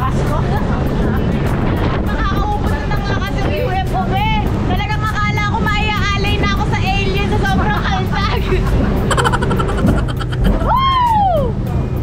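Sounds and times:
speedboat engine: 0.0 - 12.0
wind rumbling: 0.6 - 11.6
person crying out: 9.1 - 11.0.

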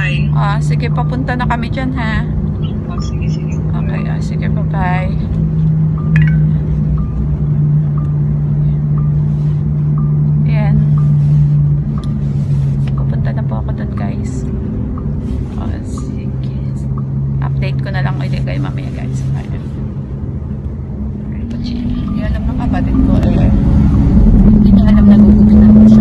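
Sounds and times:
car cabin hum: 0.0 - 26.0.

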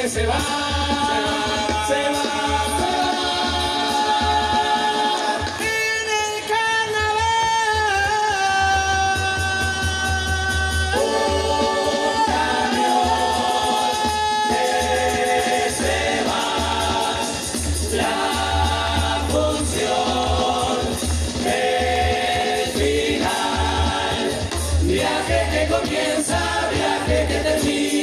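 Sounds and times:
chorus singing in harmony: 0.0 - 5.8, 10.5 - 28.0.

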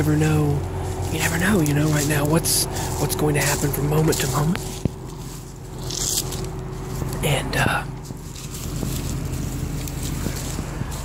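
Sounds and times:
low steady rumble: 0.0 - 11.0
camera rubbing against clothing: 3.6 - 11.0.

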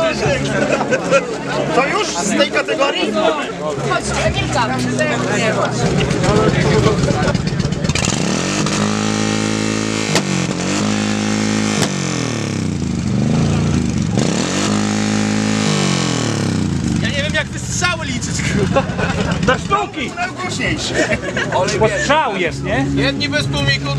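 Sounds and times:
crowd voices: 0.0 - 12.0, 15.6 - 23.9
motorcycle engine revving: 5.6 - 20.1
exhaust backfire pops: 5.8 - 17.0.

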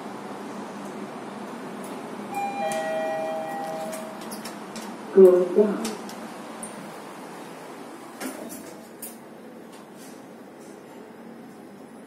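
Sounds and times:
lift electronic chime: 2.3 - 4.2.

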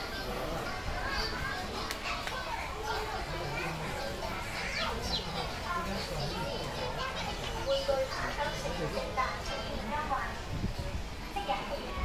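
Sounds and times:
background chatter of shoppers: 0.0 - 12.0
children's voices: 0.0 - 12.0.

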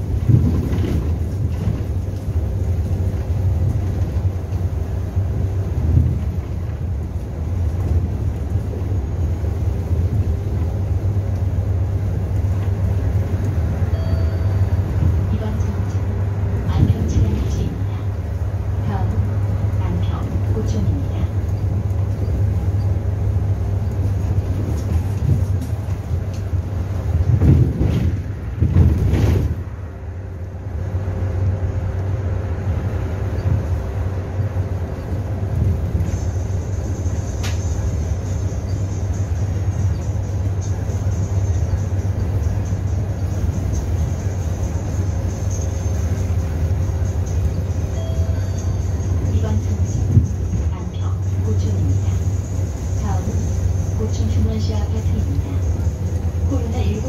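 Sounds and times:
bus engine and road drone: 0.0 - 57.0.

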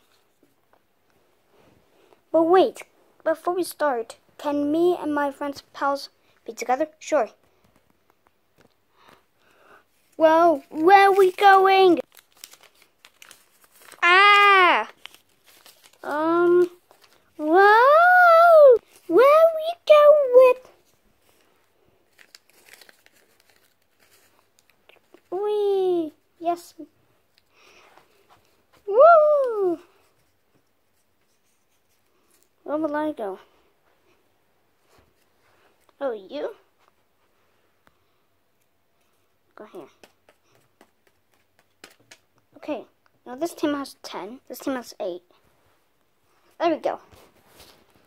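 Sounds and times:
child's high-pitched voice: 2.3 - 7.4, 10.2 - 12.1, 14.0 - 15.0, 16.0 - 16.8, 17.4 - 20.8, 25.2 - 27.0, 28.8 - 30.0, 32.6 - 33.5, 36.0 - 36.7, 39.5 - 40.0, 42.6 - 45.3, 46.6 - 47.1
faint paper rustles: 7.3 - 17.7, 18.5 - 32.7, 33.4 - 42.4, 45.3 - 48.0.

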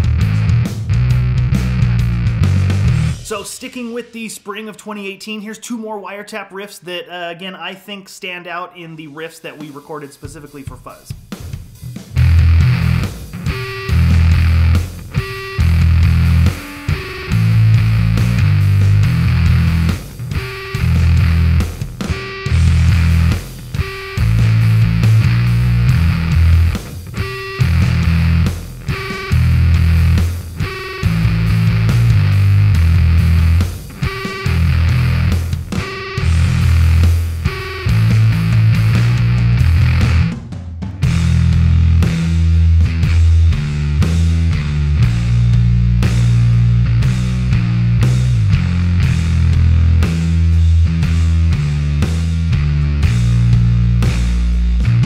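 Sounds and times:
distorted electric bass riff: 0.0 - 3.8, 11.4 - 55.0.

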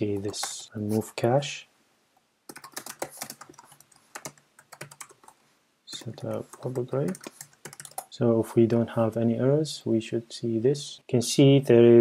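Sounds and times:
keyboard typing: 0.0 - 0.7, 2.5 - 8.1.

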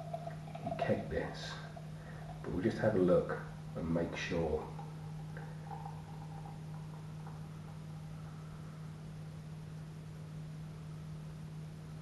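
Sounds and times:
beer pouring into glass: 0.0 - 3.1, 3.9 - 7.9
steady low hum: 0.0 - 12.0.

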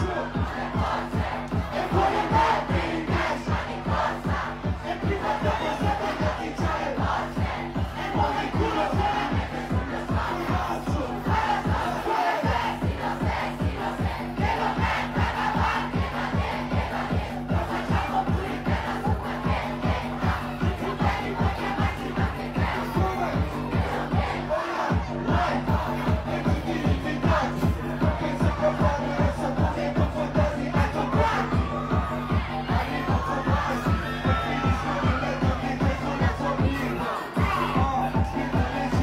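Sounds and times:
crowd shouting and singing along: 0.0 - 39.0
rapping over a hip-hop beat: 0.0 - 39.0.

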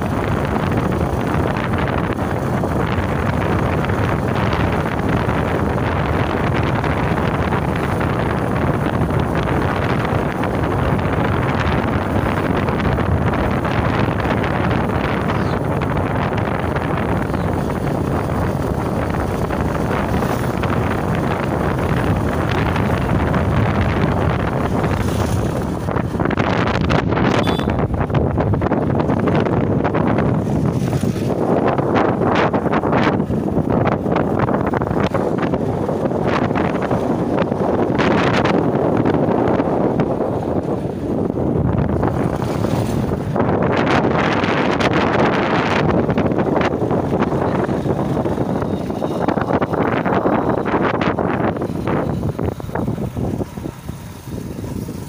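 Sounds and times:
motorcycle running: 0.0 - 55.0
wind rushing over microphone: 0.0 - 55.0.

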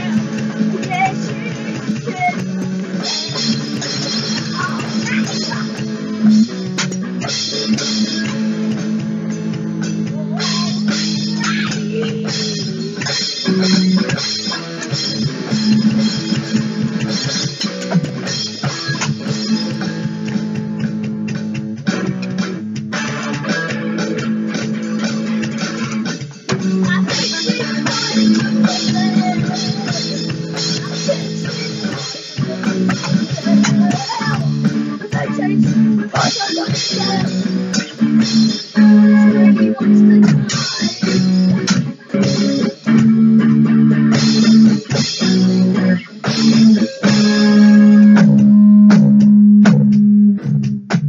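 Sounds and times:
instrumental rock music: 0.0 - 51.0.

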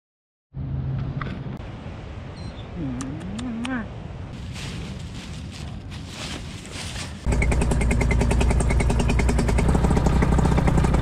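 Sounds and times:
outdoor noise: 0.5 - 11.0.

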